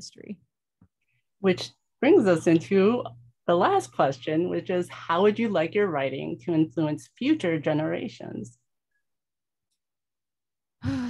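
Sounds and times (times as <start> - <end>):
woman speaking: 1.4 - 8.5.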